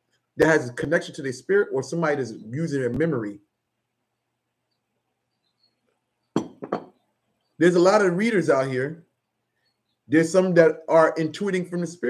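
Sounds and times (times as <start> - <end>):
ceramic mug clinking on surface: 6.4 - 7.0.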